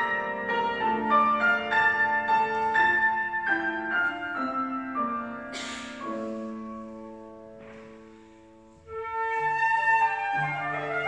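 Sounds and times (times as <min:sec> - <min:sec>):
grand piano playing single notes: 0:00.0 - 0:11.0.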